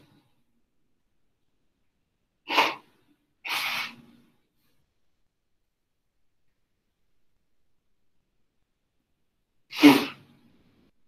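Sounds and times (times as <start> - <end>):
person sneezing: 2.4 - 4.0, 9.7 - 10.3.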